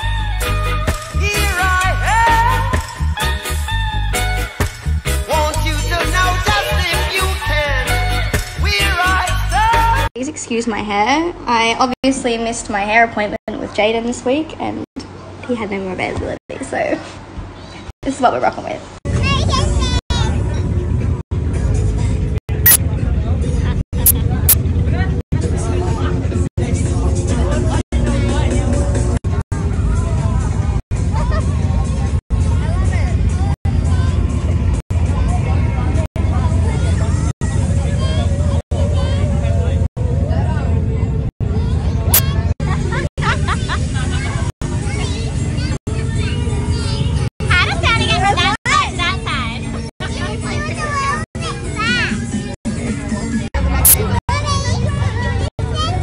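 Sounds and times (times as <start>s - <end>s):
music: 0.0s - 10.1s, 26.6s - 30.8s
boy talking: 53.8s - 56.0s.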